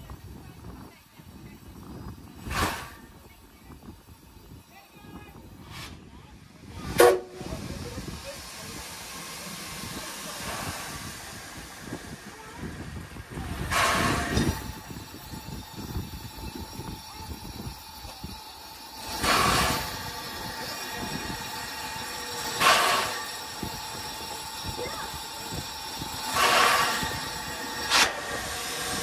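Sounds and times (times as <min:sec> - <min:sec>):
wind rumble on microphone: 0:00.0 - 0:08.3, 0:09.9 - 0:18.4
steam locomotive hissing: 0:00.0 - 0:29.0.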